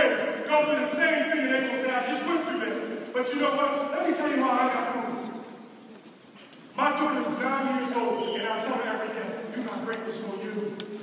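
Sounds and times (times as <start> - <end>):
man speaking: 0.0 - 5.4, 6.8 - 11.0.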